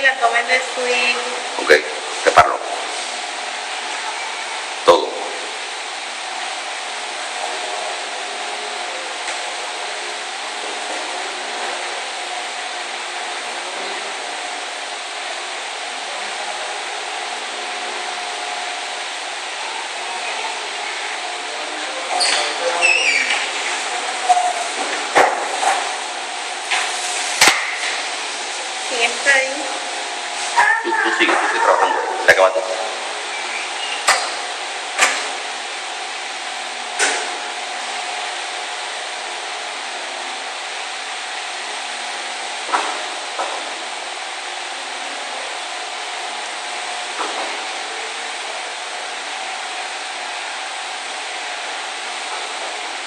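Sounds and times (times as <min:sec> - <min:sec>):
movement or voice sounds: 0:30.6 - 0:33.1.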